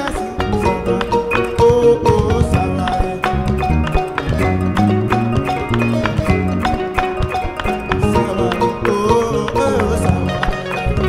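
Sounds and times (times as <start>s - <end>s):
hand percussion: 0.0s - 11.0s
plucked string lute: 0.0s - 11.0s
bass line: 0.2s - 11.0s.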